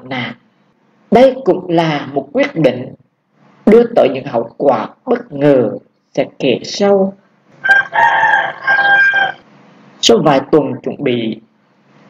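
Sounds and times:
rooster crowing: 7.6 - 9.5.

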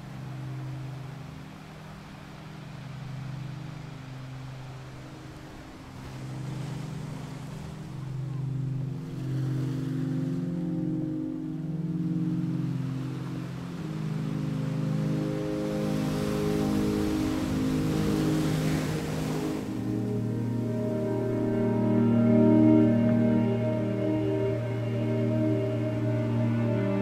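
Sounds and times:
ocean surf rushing: 0.0 - 27.0
slow ambient music: 0.0 - 27.0.

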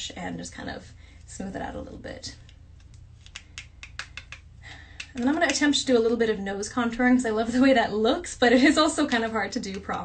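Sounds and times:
makeup tools clicking: 2.4 - 5.7, 9.7 - 10.0.

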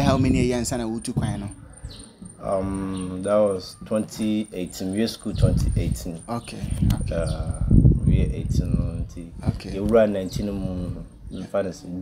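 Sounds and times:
man talking: 0.0 - 1.6, 2.2 - 12.0
crickets chirring: 0.0 - 8.7.

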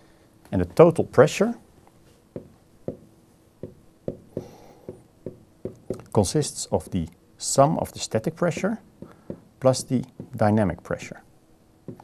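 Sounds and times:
stylus tapping on tablet: 2.3 - 6.1, 8.6 - 9.5, 10.2 - 10.5.

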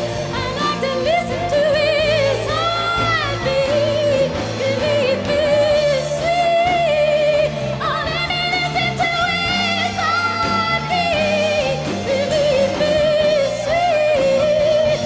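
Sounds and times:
electric bass notes: 0.0 - 15.0
live band playing: 0.0 - 15.0
woman singing with vibrato: 0.0 - 15.0.

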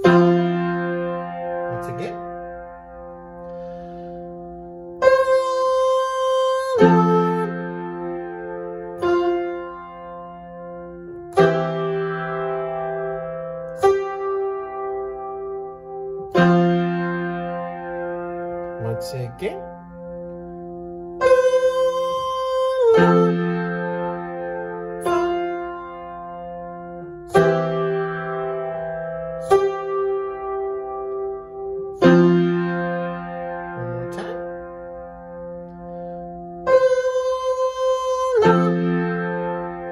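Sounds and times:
piano chords ringing: 0.0 - 39.9.

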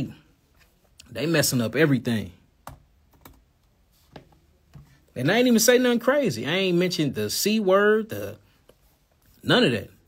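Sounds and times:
computer keys clicking: 2.6 - 3.4.

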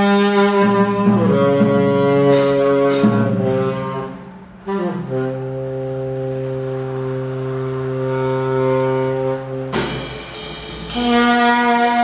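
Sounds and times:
tenor saxophone long low note: 0.1 - 12.0.

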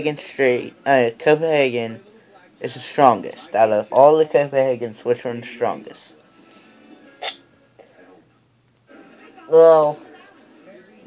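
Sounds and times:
sharp mouth or throat sound: 7.2 - 7.4.

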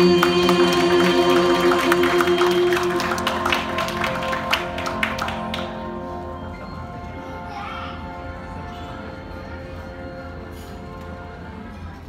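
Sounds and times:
a cappella group singing chord: 0.0 - 4.1
audience applause: 0.0 - 6.2.

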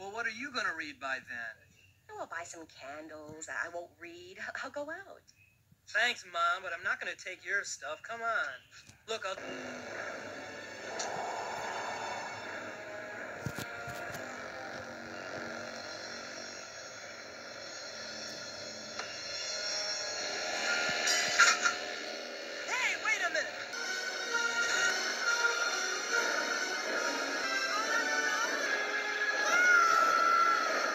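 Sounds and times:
dramatic cartoon music: 9.4 - 16.5, 17.1 - 30.9.

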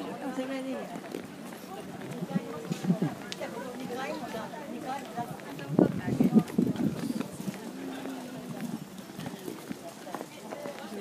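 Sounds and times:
footsteps on stone paving: 0.0 - 11.0
indistinct chatter: 0.0 - 11.0.

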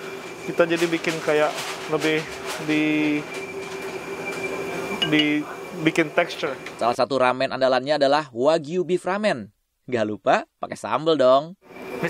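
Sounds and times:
kitchen equipment hum: 0.0 - 7.0
thin high whine: 2.8 - 7.0.

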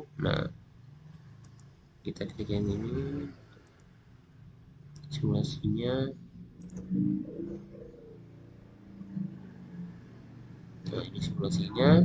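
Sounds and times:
low murmured voice: 0.0 - 0.5, 2.1 - 3.3, 5.1 - 6.2, 10.9 - 12.0
faint steady hum: 0.0 - 12.0
computer mouse clicks: 1.1 - 1.7, 3.5 - 3.9, 6.6 - 7.0.

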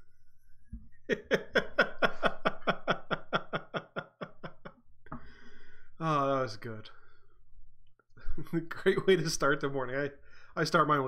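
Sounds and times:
man laughing: 1.1 - 4.8.

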